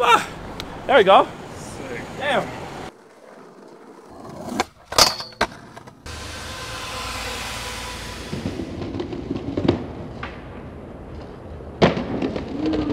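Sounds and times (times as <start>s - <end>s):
skateboard wheels rolling on pavement: 0.4s - 12.9s
skateboard scraping metal handrail: 3.0s - 8.8s.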